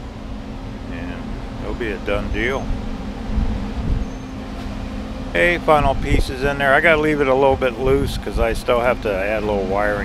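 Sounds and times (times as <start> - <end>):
low mechanical motor hum: 0.0 - 10.0
wind rumble on microphone: 2.0 - 4.3, 5.4 - 9.2.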